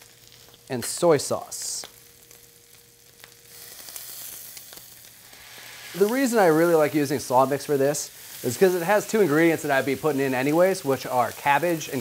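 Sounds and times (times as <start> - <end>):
meat sizzling in frying pan: 0.0 - 12.0.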